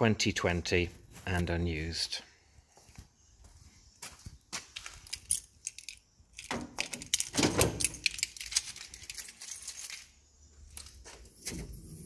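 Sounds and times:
metallic clicks and jingling: 4.8s - 11.0s.

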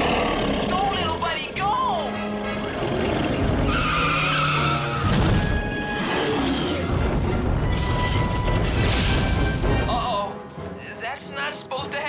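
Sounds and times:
cartoon chase music: 0.7s - 10.4s
tyre squeals: 3.6s - 6.4s.

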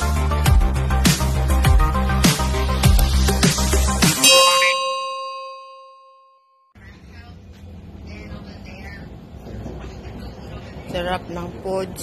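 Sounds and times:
notification bell chime: 4.2s - 6.7s.

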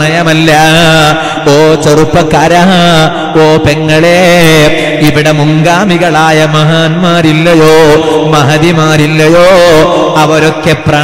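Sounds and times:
man chanting in sing-song: 0.0s - 11.0s.

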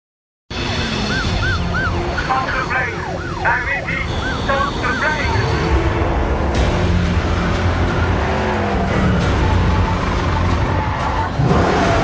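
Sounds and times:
car engines rumbling: 0.5s - 12.0s
police sirens yelping: 0.9s - 6.4s, 7.4s - 12.0s.

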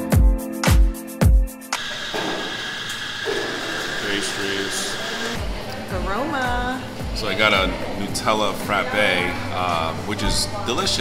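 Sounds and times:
espresso machine hissing: 1.8s - 5.4s
high steady whine: 1.8s - 5.4s.

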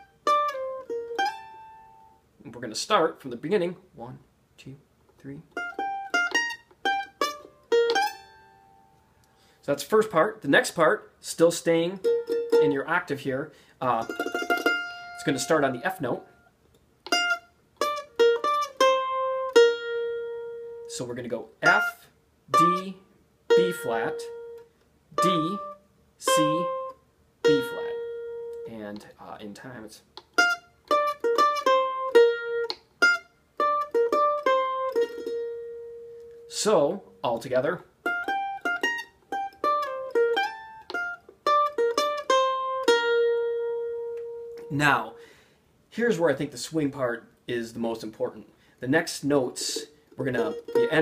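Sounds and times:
mandolin picking single notes: 0.0s - 3.5s, 5.1s - 45.4s, 46.0s - 51.0s.

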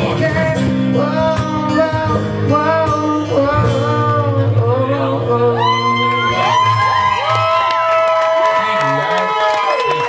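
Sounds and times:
audience cheering and whooping: 5.6s - 10.0s.

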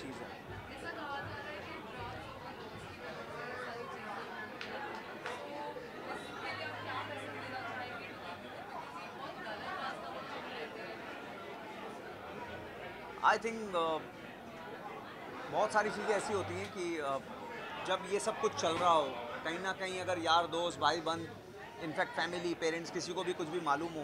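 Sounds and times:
background chatter: 0.0s - 24.0s.

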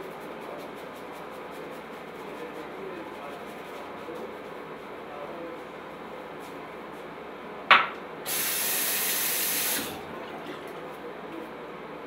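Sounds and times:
tap running water: 8.3s - 10.9s.

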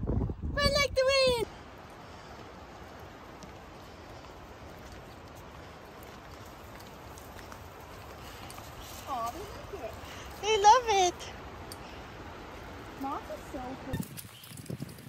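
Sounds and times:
outdoor background hiss: 0.0s - 15.0s
footsteps on a forest trail: 1.5s - 15.0s.

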